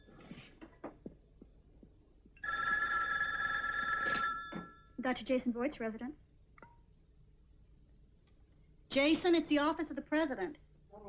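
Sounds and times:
telephone bell ringing: 2.4 - 5.0.

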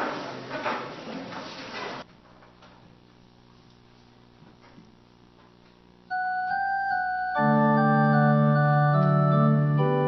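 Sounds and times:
faint steady hum: 2.1 - 10.0.

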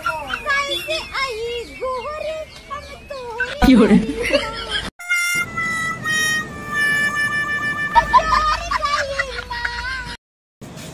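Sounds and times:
high wavering voice: 3.4 - 4.3
long held music notes: 5.0 - 9.0.

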